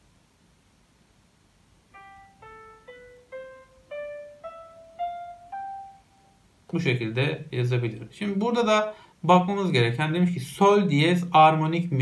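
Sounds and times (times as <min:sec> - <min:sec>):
piano notes in rising scale: 0:01.9 - 0:06.4.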